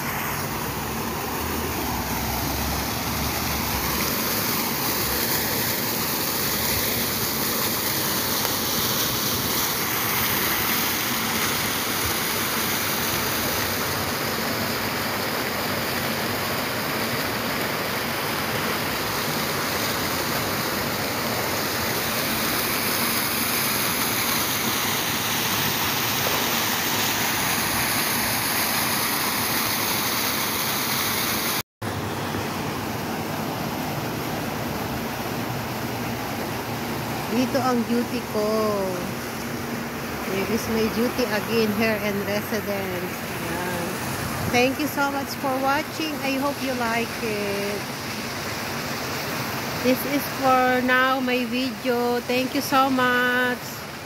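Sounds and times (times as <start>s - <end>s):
fountain water splashing: 0.0s - 54.0s.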